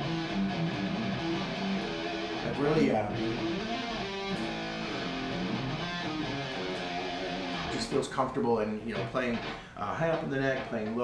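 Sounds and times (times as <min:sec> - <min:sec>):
electric guitar playing: 0:00.0 - 0:08.0, 0:08.8 - 0:11.0.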